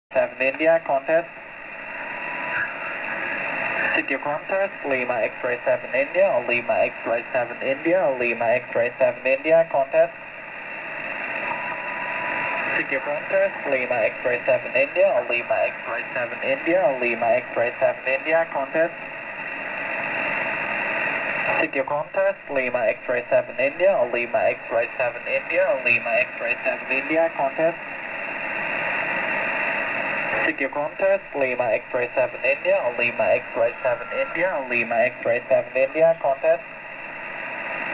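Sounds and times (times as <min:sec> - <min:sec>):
radio band noise hiss: 0:00.1 - 0:37.9
faint steady whistle: 0:11.4 - 0:12.8.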